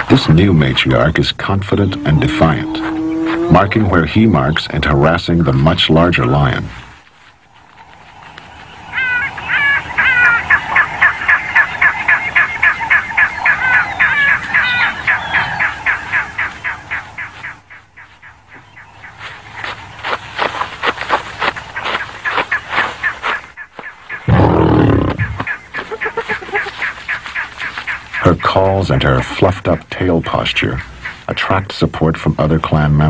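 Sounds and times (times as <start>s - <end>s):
loud low sound: 0.1s - 5.0s
hyena yelping: 1.4s - 4.1s, 8.9s - 17.3s, 24.2s - 26.9s.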